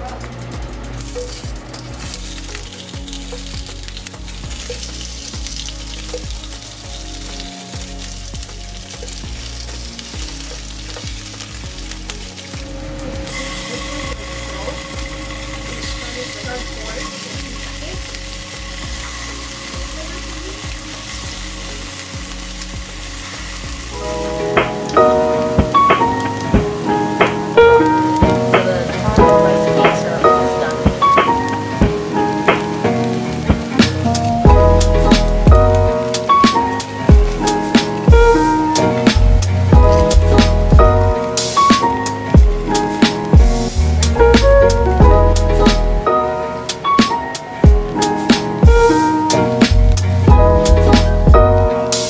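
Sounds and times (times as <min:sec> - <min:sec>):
background music with beat: 0:00.0 - 0:52.0
oil sizzling in a frying pan: 0:00.0 - 0:52.0.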